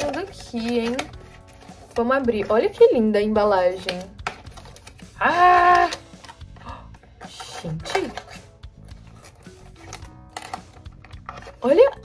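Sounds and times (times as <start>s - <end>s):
faint background music: 0.0s - 12.0s
person exclaiming: 5.2s - 6.0s.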